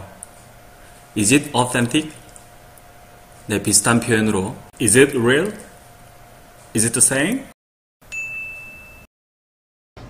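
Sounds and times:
high bell-like ding: 8.0 - 9.1.

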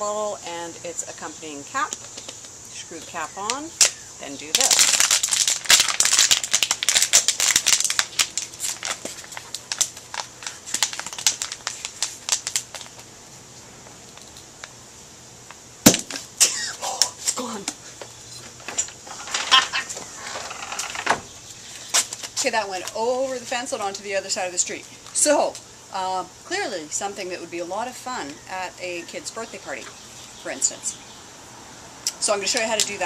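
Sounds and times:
plastic bottle crinkling: 3.9 - 13.1.

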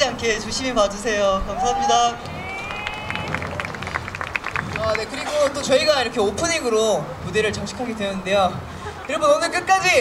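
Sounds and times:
audience screaming: 1.5 - 4.1.

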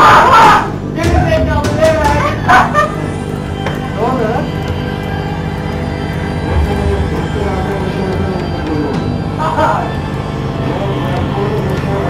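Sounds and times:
background music with low drone: 0.0 - 12.0
people's voices: 0.0 - 12.0.

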